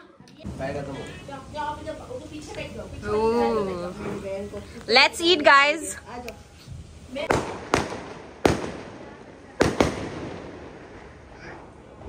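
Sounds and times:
fireworks bangs: 6.7 - 12.0.

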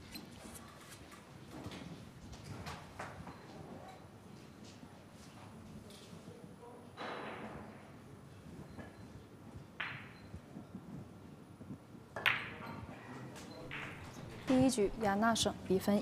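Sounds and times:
billiard balls clicking: 12.2 - 12.7, 13.7 - 14.6.

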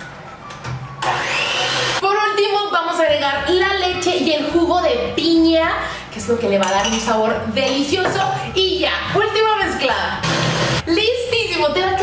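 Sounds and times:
electric hand mixer running: 1.0 - 2.0, 10.2 - 10.8.

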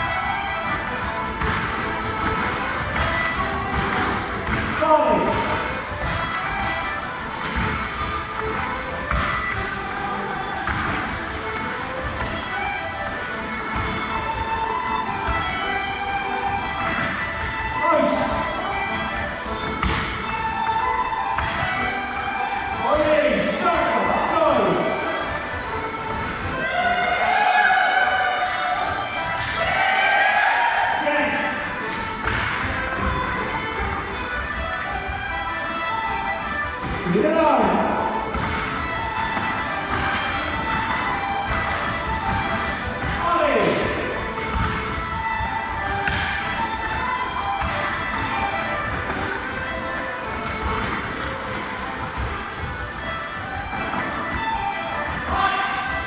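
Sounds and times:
dancers' feet thudding on floor: 0.0 - 22.8, 24.8 - 27.2, 31.7 - 37.0, 37.9 - 56.0
crowd noise: 0.0 - 56.0
irish traditional reel music: 0.0 - 56.0.

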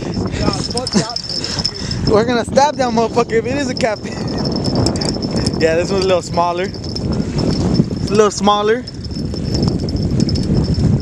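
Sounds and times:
wind buffeting the microphone: 0.0 - 11.0.

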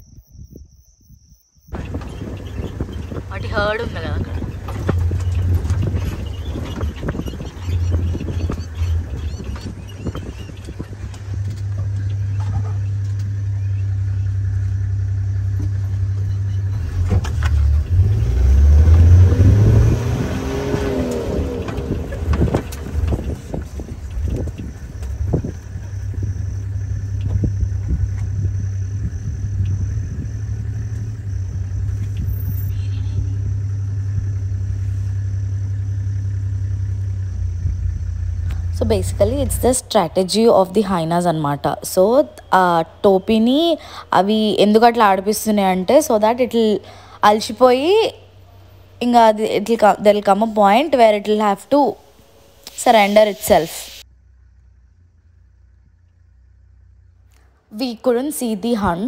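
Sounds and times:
vehicle engine revving: 1.7 - 59.0.

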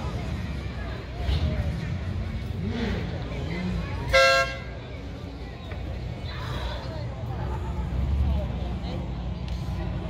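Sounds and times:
faint voices: 0.0 - 10.0
vehicle horn toot: 4.1 - 4.8.

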